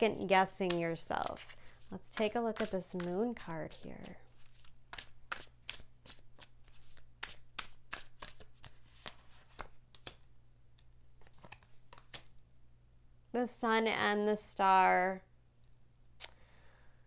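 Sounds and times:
cards being shuffled: 0:00.2 - 0:12.4.

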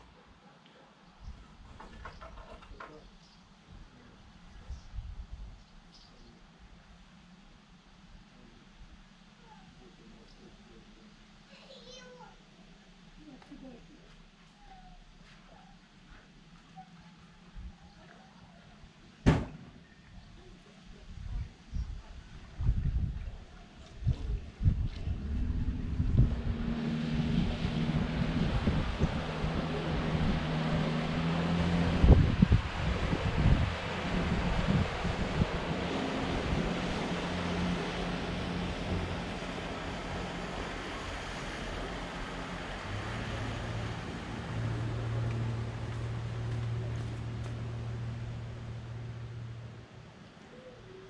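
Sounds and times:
wind buffeting microphone: 0:21.0 - 0:49.2
motorboat engine: 0:21.8 - 0:51.0.

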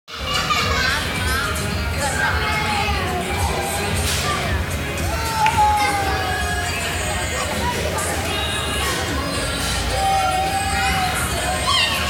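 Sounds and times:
children playing and calling out: 0:00.1 - 0:12.0.

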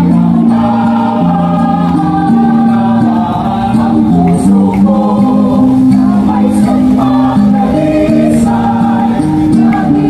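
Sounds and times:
mixed choir singing in harmony: 0:00.0 - 0:10.0.

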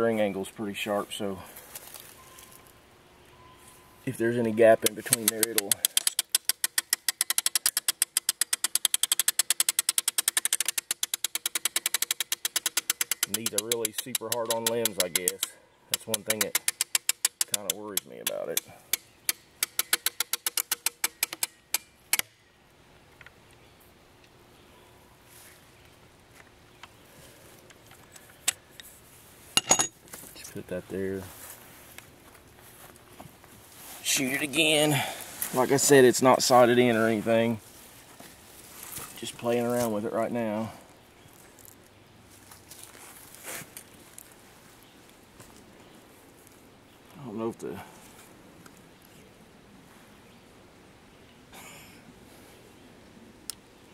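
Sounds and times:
small ticks: 0:04.8 - 0:15.5
rapid mechanical clicks: 0:04.8 - 0:22.3.

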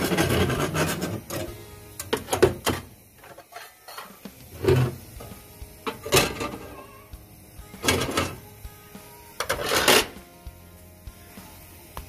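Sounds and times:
metal grill grates clattering: 0:00.0 - 0:05.0, 0:05.8 - 0:07.0, 0:09.4 - 0:10.2.

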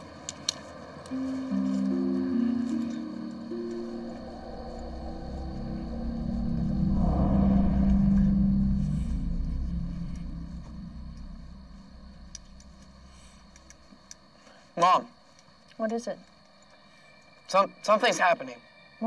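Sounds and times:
suspenseful underscore music: 0:01.1 - 0:14.4
deep rumble: 0:02.8 - 0:14.2.

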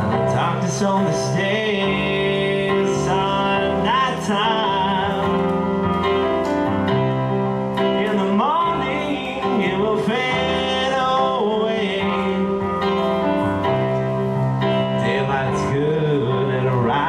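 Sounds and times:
man singing long notes: 0:00.0 - 0:05.8, 0:08.0 - 0:13.6, 0:14.9 - 0:17.0
electronic keyboard chords: 0:00.0 - 0:17.0.

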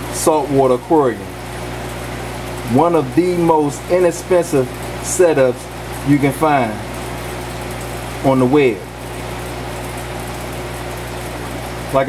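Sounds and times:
air pump humming with hiss: 0:00.0 - 0:12.0.

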